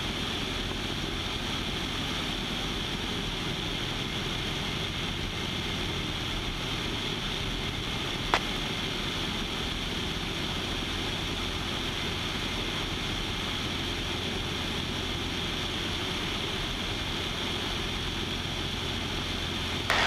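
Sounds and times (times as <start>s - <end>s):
airplane engine and propeller drone: 0.0s - 20.0s.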